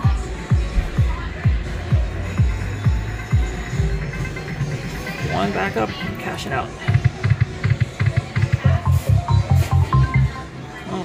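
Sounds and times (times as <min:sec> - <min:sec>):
slot machine low thumps: 0:07.1 - 0:10.4.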